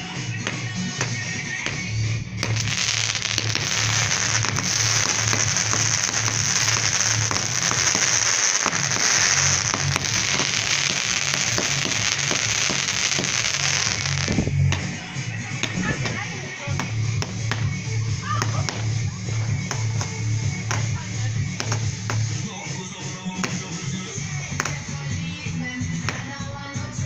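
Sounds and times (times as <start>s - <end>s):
background music with bass pulse: 0.0s - 27.0s
fireworks crackling and hissing: 0.0s - 27.0s.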